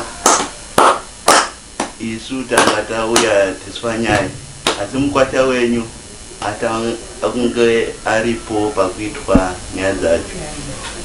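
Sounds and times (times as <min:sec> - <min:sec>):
percussive beat of sharp hits: 0:00.2 - 0:03.4, 0:04.0 - 0:05.8.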